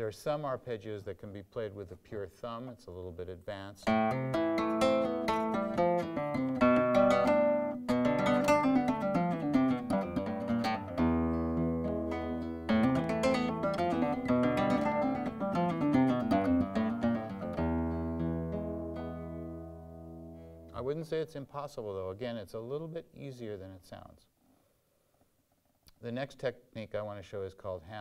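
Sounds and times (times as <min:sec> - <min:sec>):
flamenco guitar arpeggio: 0:03.9 - 0:20.8.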